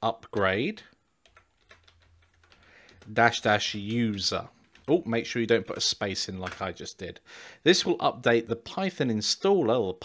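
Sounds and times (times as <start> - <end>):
computer keyboard typing: 1.2 - 6.9.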